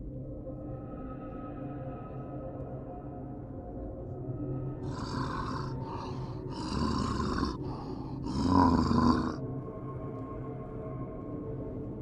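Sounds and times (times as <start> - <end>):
man's throaty zombie growl: 4.8 - 9.4.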